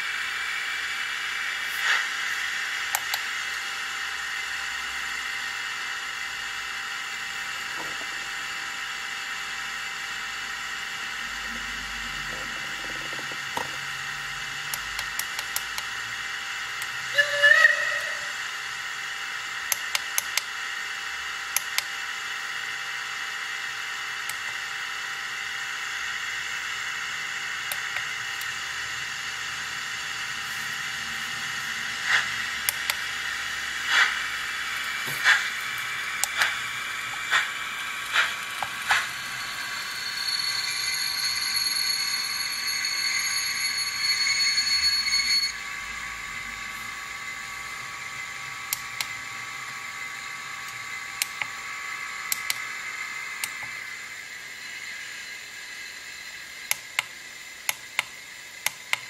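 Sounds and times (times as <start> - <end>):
short locomotive whistle: 17.1 - 18.4.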